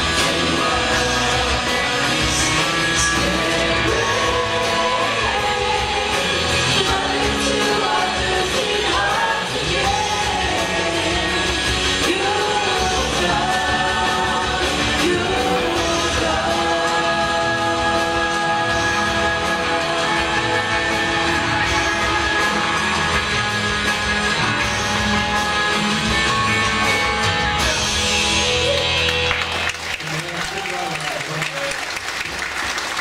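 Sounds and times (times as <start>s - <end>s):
person singing: 0.0s - 24.4s
worship band playing: 0.0s - 33.0s.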